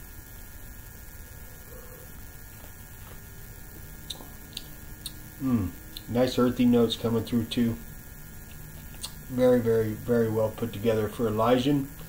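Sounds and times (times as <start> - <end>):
low electrical hum: 0.0 - 12.0
faint mouth clicks: 4.0 - 5.2, 5.9 - 6.1, 8.5 - 9.2.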